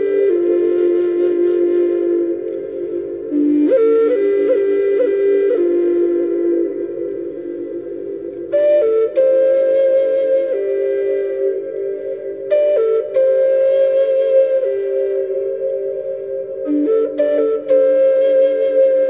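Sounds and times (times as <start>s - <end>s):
flute-like wind instrument: 0.0s - 19.0s.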